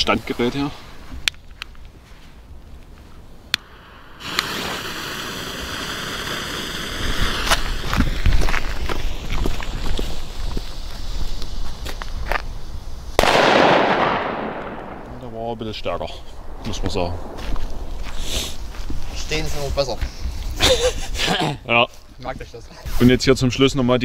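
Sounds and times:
firecracker fuse hissing: 3.5 - 15.0, 15.8 - 21.3
firecracker bang: 3.6 - 10.6, 13.2 - 19.7.

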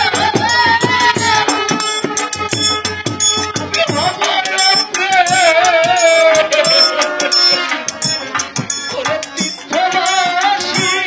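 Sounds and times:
hand percussion with rattles and drums: 0.0 - 11.0.

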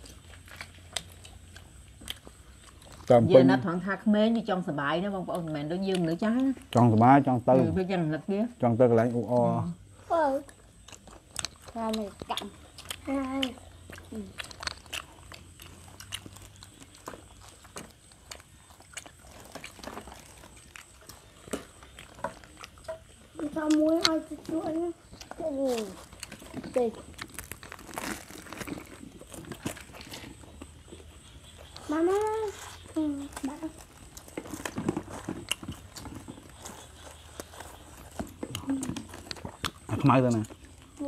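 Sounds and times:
faint chewing: 0.0 - 7.7, 8.9 - 41.0
plastic bags crinkling: 25.6 - 30.4.

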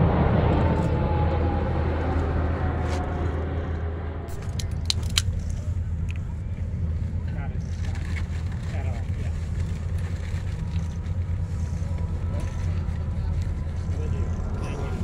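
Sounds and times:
jet airliner flying overhead: 0.0 - 15.0.

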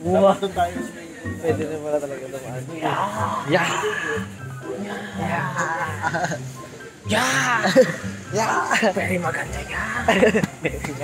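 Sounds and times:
background music: 0.0 - 11.0
young men talking and exclaiming: 0.0 - 11.0.

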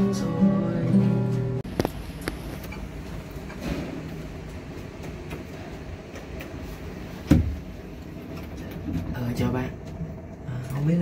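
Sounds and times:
elevator low hum: 0.0 - 11.0.

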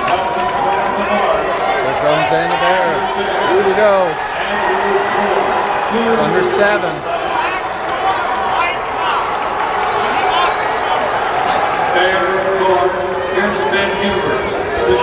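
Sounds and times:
spectators shouting and cheering: 0.0 - 15.0.

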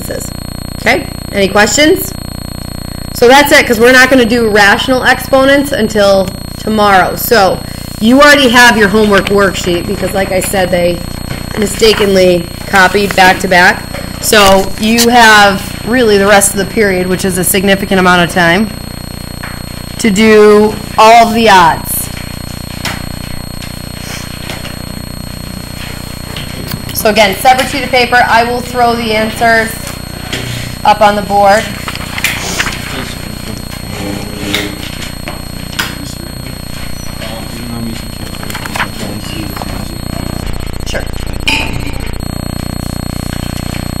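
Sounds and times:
loud rattling electric buzz: 0.0 - 44.0
low machine hum: 0.0 - 44.0.

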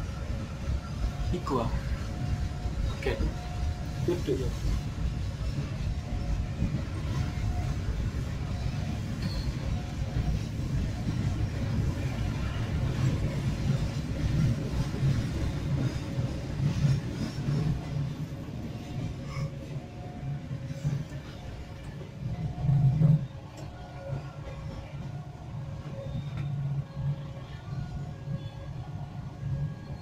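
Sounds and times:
train wheels rumbling on rails: 0.0 - 30.0.

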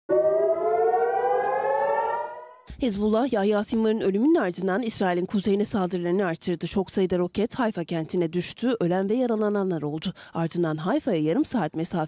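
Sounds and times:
air-raid siren rising: 0.1 - 2.7.

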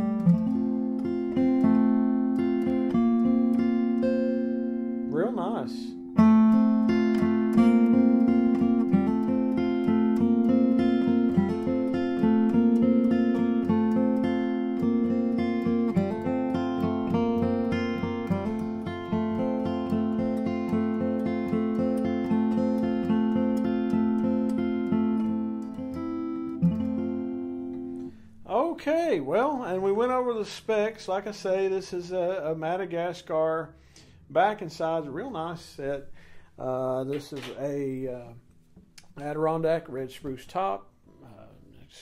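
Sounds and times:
acoustic guitar picked notes: 0.0 - 41.6.

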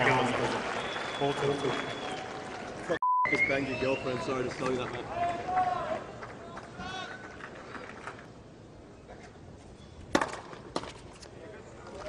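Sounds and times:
stadium background noise: 0.0 - 12.0.

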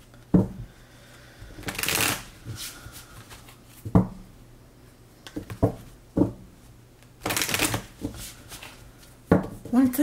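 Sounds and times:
cards rustling while shuffled: 1.6 - 3.8, 7.2 - 9.2.

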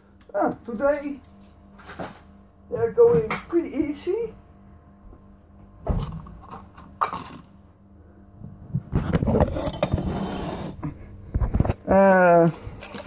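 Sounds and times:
plastic crackling and scraping: 8.9 - 11.8.

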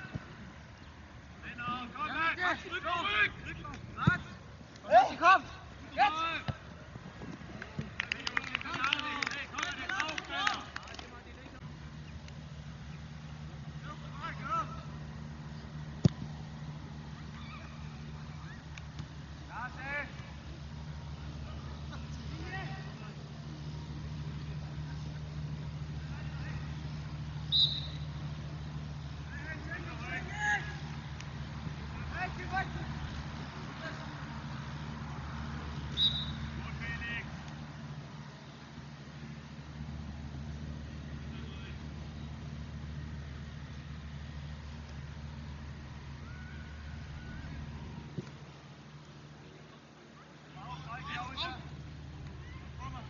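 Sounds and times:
steady low hum: 0.0 - 53.0
players shouting: 1.4 - 6.6, 29.2 - 31.0
referee's whistle blast: 27.5 - 28.1, 35.9 - 36.5.

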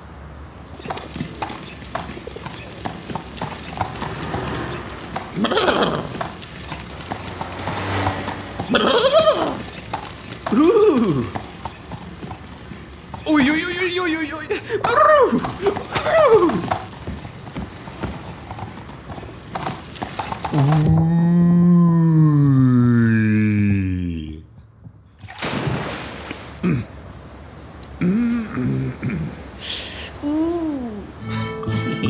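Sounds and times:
hooves clip-clopping on hard street: 0.6 - 21.1.

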